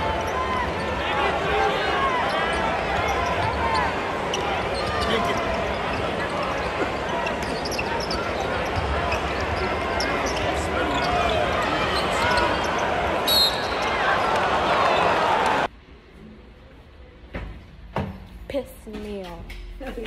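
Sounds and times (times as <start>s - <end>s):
crowd chatter murmur: 0.0s - 15.7s
sneakers squeaking on hardwood: 2.3s - 12.8s.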